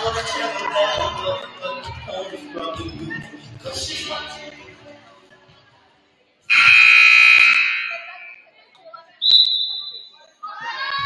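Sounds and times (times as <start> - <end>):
scoreboard buzzer blast: 6.5 - 8.1.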